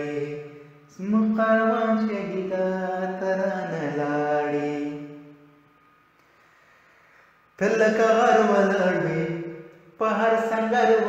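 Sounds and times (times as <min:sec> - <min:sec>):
man singing a long note: 0:00.0 - 0:05.4, 0:07.6 - 0:11.0.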